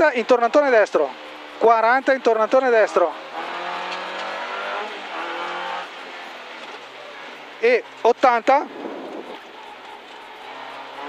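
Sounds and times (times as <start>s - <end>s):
rally car engine pulling hard: 0.1s - 11.0s.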